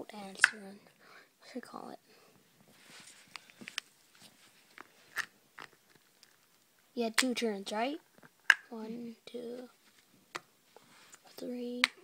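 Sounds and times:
plastic figures clicking and tapping: 7.2s - 7.4s, 11.8s - 12.0s.

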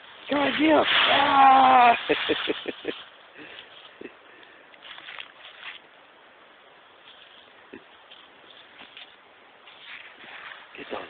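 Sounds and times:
paws rustling through dry leaves: 0.0s - 11.0s.

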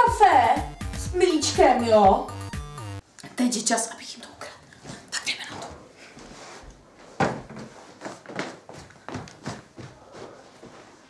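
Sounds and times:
footsteps walking briskly indoors: 4.6s - 11.0s.

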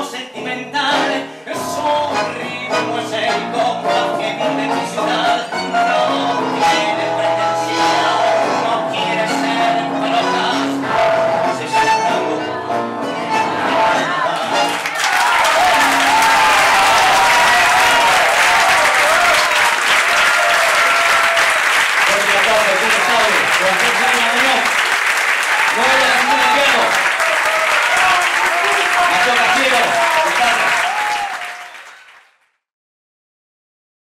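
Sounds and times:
voices calling out and cheering: 13.7s - 24.6s, 25.5s - 31.7s
audience applauding: 13.7s - 32.6s.

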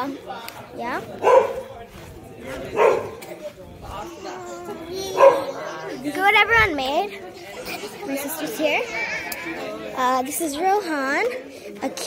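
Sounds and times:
dog barking: 1.2s - 1.7s, 2.7s - 3.2s, 5.1s - 5.5s.

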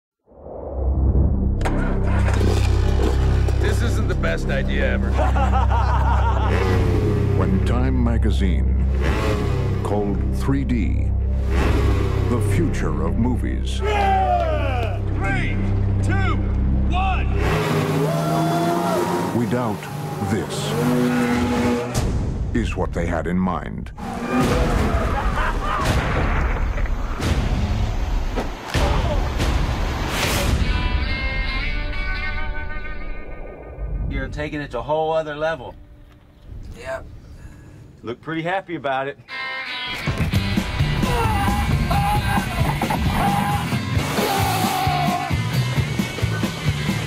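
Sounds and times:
people shouting: 13.8s - 15.0s, 17.9s - 21.8s, 28.7s - 29.4s, 40.9s - 45.5s.

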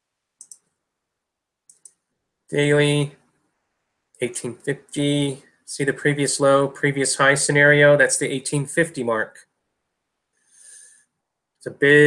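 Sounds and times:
faint computer mouse clicks: 0.4s - 0.7s, 1.7s - 2.0s.

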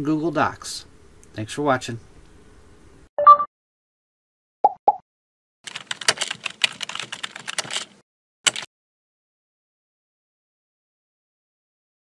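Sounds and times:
rapid keyboard typing: 5.7s - 8.7s.

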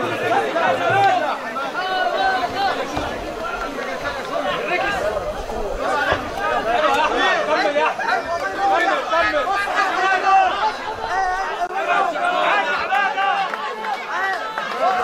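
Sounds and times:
crowd shouting and talking: 0.0s - 15.0s.

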